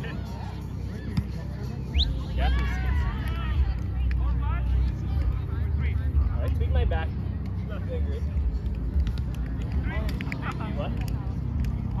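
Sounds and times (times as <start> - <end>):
players calling and chatting: 0.0 - 12.0
steady low rumble: 0.1 - 12.0.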